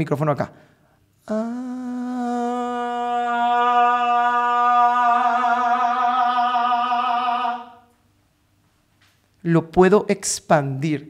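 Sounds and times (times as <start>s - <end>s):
man singing long note: 1.2s - 7.8s.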